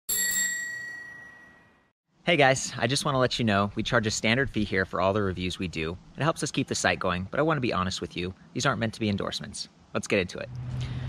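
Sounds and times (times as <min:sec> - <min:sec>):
bell strike ringing: 0:00.1 - 0:01.9.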